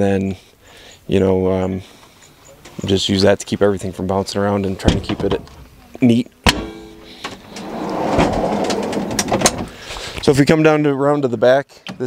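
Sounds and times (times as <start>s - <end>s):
fridge slide rolling on rails: 7.4s - 9.7s.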